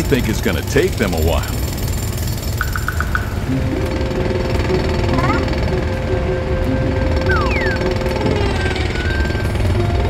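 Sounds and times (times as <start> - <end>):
background music: 0.0 - 10.0
jackhammer hammering: 0.1 - 6.0.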